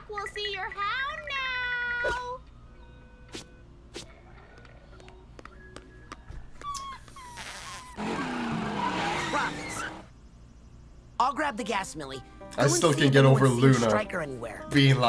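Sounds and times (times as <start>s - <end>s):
cartoon van engine: 8.0s - 10.1s
tyres skidding: 8.0s - 10.1s.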